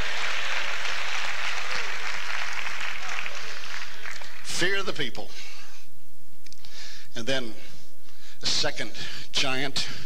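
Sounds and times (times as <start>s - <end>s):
congregation applauding: 0.0s - 4.6s.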